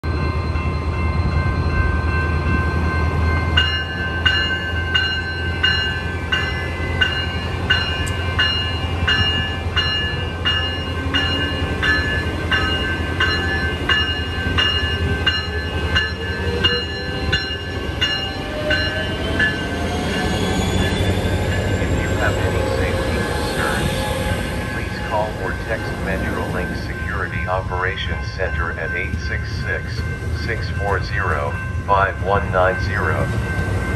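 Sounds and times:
diesel locomotive engine hum: 0.0s - 33.9s
locomotive bell ringing: 0.0s - 33.9s.

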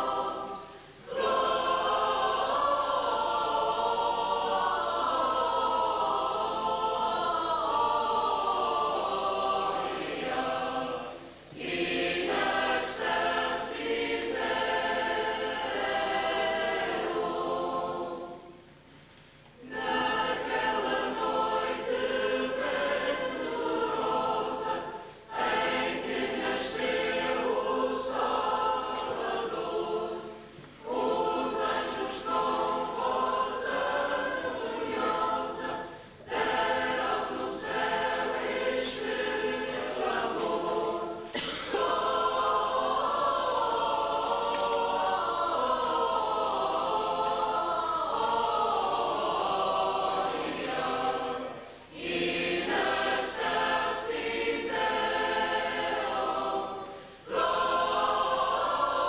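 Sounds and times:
mixed church choir singing: 0.0s - 59.0s.

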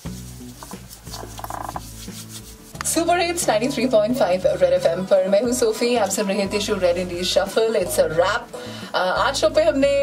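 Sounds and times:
hands rubbing together: 0.0s - 3.2s
woman speaking: 2.8s - 10.0s.

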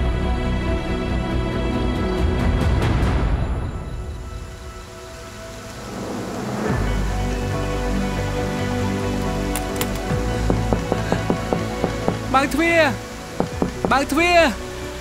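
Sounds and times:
slow dark music score: 0.0s - 15.0s
steady rain: 2.2s - 15.0s
hand knocking on door: 10.5s - 12.5s, 13.4s - 14.2s.

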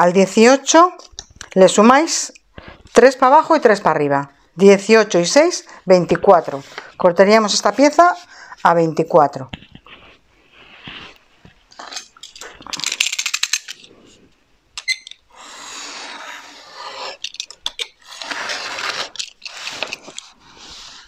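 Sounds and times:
utility knife slicing paper: 15.3s - 17.3s, 18.0s - 21.0s.

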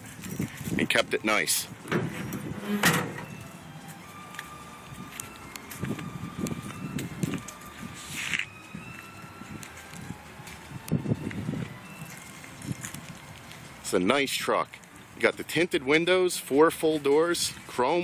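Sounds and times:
footsteps on pavement: 0.0s - 18.0s
handheld camera rustle: 3.6s - 13.8s.

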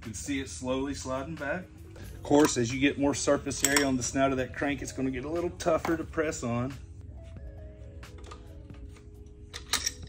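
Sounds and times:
faint background music: 0.0s - 10.0s
metal wrench clicking and clinking: 3.5s - 4.2s, 9.5s - 10.0s.

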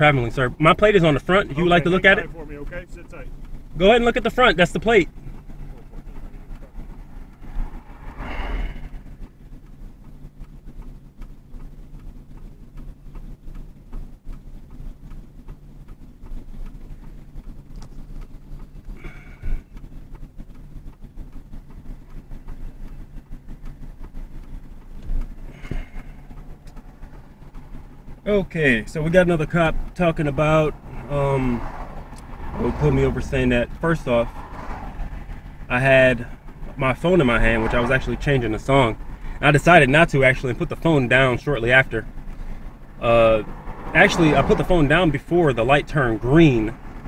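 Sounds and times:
car engine idling: 0.0s - 47.0s.

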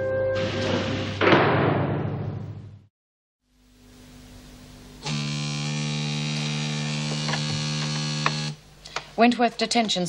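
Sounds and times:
telephone buzzer ringing: 5.0s - 8.6s.

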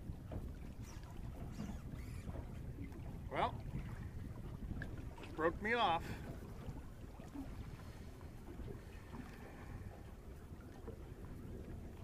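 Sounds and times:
choppy water around boat: 0.0s - 12.0s
wind on microphone: 0.0s - 12.0s.

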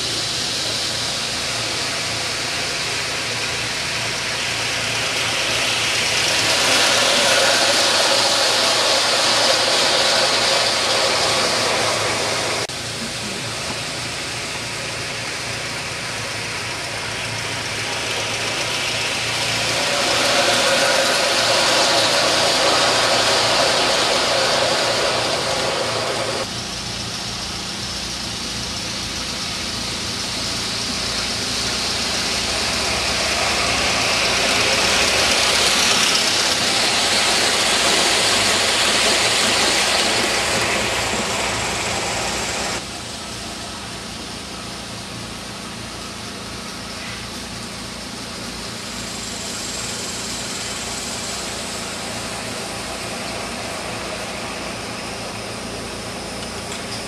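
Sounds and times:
steam hissing: 0.0s - 57.0s.

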